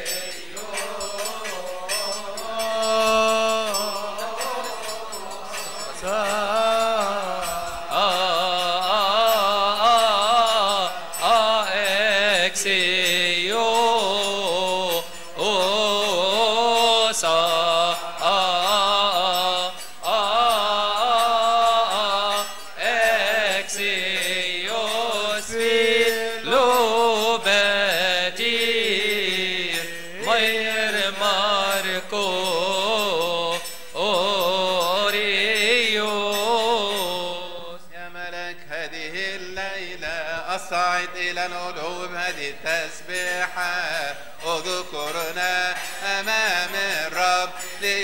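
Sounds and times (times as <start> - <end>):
choir chanting a hymn: 0.0 - 48.0.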